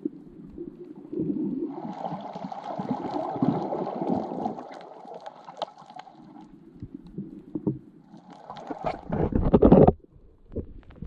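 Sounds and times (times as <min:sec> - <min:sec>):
muffled underwater rumbling: 0:00.0 - 0:05.0, 0:06.2 - 0:11.0.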